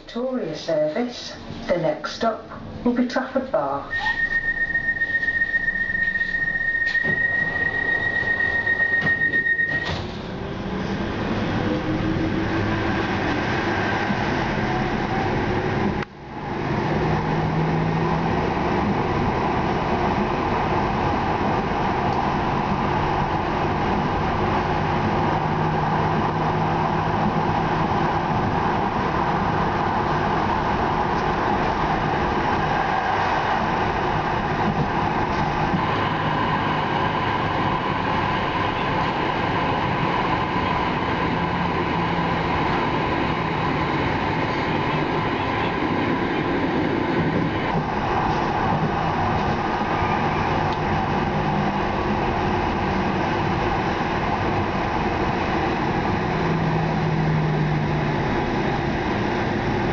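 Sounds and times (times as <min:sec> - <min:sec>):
tram wheels on rails: 0:01.2 - 0:59.9.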